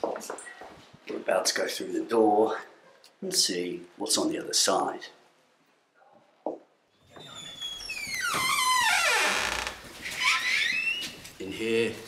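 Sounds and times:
door creaking: 7.0 - 11.4.

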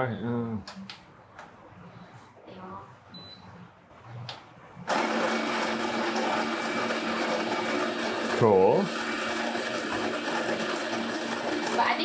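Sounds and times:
electric coffee grinder grinding: 4.9 - 12.0.

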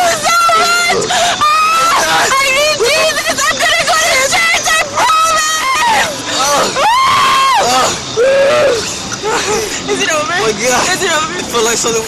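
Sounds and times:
women screaming: 0.0 - 9.7.

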